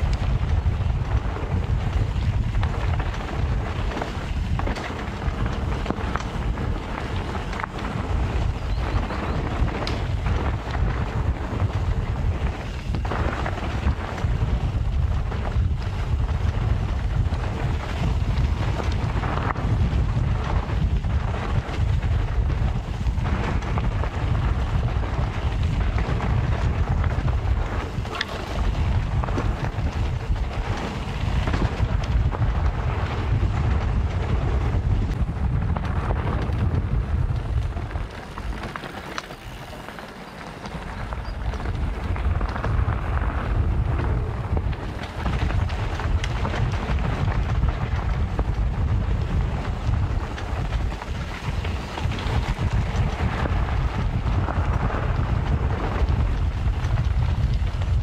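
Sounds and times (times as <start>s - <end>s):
bike rumbling and rattling: 0.0s - 58.0s
wind buffeting microphone: 0.0s - 58.0s.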